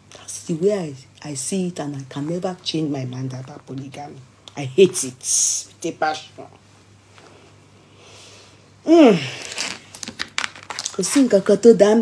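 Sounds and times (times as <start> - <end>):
woman humming hmm: 8.8 - 9.4
crackling clicks and rustles: 9.4 - 11.5.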